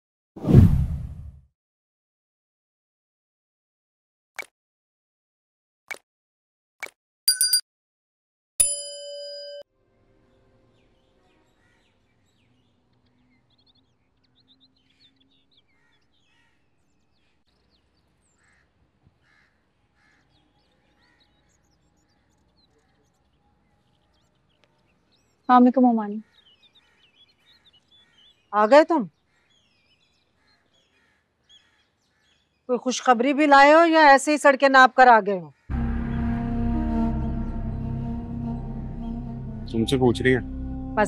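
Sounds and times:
deep whoosh: 0:00.4 - 0:01.4
faint bird calls: 0:26.2 - 0:32.5.

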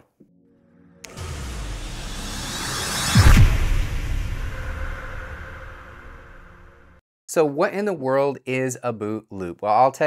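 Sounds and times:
low rumble: 0:01.0 - 0:07.0
whooshing riser: 0:01.0 - 0:07.0.

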